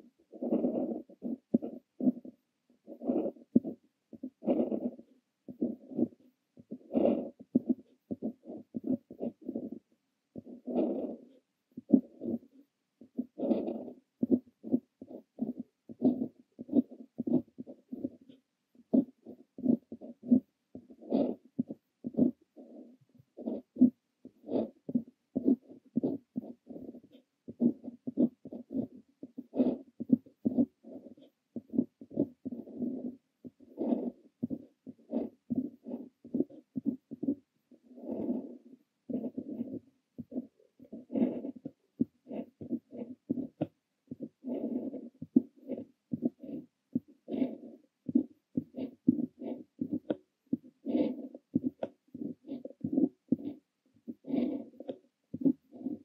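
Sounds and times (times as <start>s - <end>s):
pen scratching across paper: 0.0s - 9.8s, 10.4s - 56.0s.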